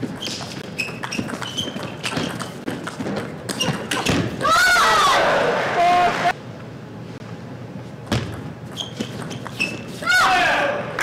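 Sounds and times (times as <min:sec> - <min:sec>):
shoes squeaking on floor: 0:00.0 - 0:04.3, 0:08.1 - 0:10.0
table tennis ball hits and bounces: 0:00.1 - 0:04.4, 0:08.0 - 0:09.9.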